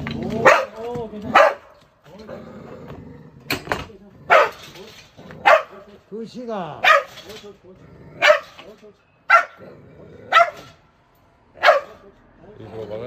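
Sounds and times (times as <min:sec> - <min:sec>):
dog barking sharply: 0:00.4 - 0:01.8, 0:04.3 - 0:04.7, 0:05.4 - 0:05.9, 0:06.8 - 0:07.3, 0:08.2 - 0:08.6, 0:09.3 - 0:09.6, 0:10.3 - 0:10.8, 0:11.6 - 0:12.0.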